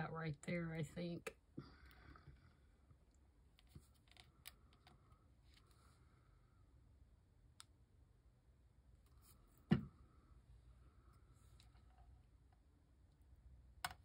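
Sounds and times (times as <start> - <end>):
knock on table: 9.7 - 9.9.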